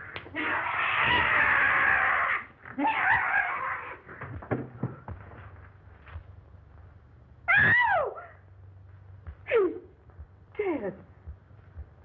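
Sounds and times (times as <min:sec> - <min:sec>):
harsh scream: 0:00.3 - 0:04.1, 0:07.5 - 0:08.4.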